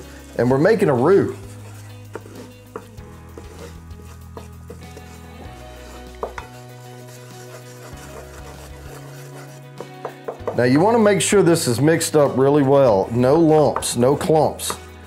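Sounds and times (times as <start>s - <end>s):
wooden spoon scraping a pan: 0.0s - 15.0s.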